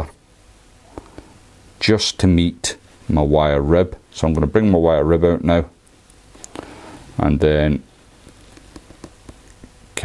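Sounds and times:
light background hiss: 0.0 - 10.0
small ticks and taps: 8.2 - 9.8.

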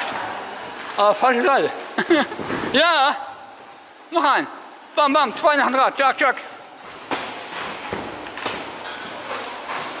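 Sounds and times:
background hiss of hall: 0.0 - 10.0.

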